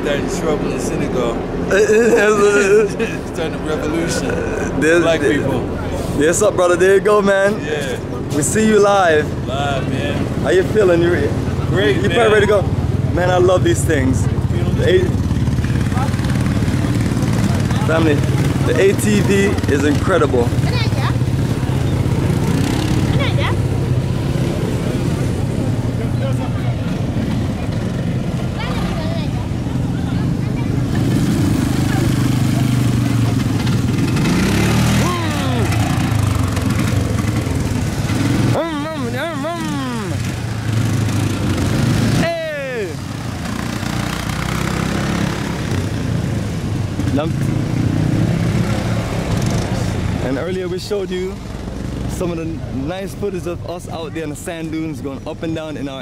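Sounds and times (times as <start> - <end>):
small engines humming and revving: 0.0 - 56.0
background voices: 1.4 - 6.2.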